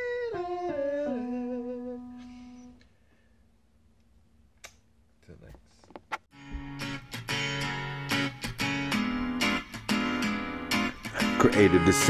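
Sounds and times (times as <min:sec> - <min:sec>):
held keyboard notes: 0:06.4 - 0:12.0
man singing: 0:11.1 - 0:12.0.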